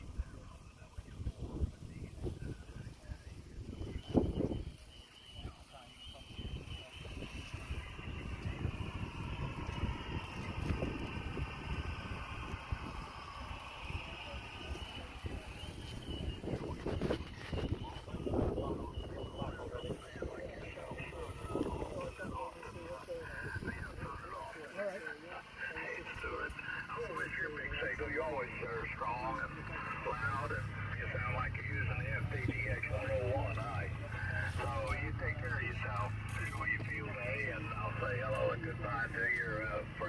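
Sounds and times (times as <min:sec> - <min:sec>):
thin voice from radio speaker: 0:00.0 - 0:40.0
wind buffeting microphone: 0:06.3 - 0:24.3.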